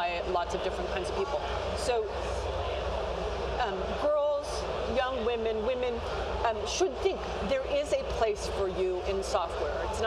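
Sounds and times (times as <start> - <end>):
woman's voice: 0.0 - 2.3, 3.6 - 10.0
exhibition hall hubbub: 0.0 - 10.0.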